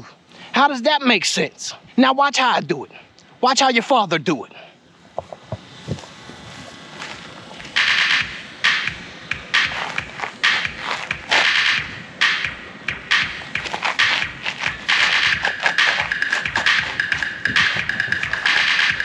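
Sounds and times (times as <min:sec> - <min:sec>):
hip-hop music from a boombox: 0:05.1 - 0:19.0.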